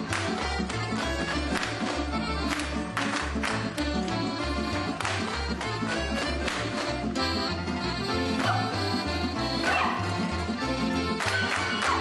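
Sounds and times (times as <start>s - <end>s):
lively folk dance music: 0.0s - 12.0s.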